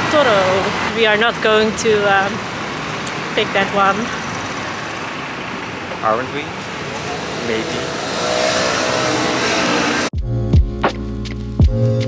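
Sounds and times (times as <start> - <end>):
city street noise: 0.0 - 10.2
music with bass and drums: 10.2 - 12.0.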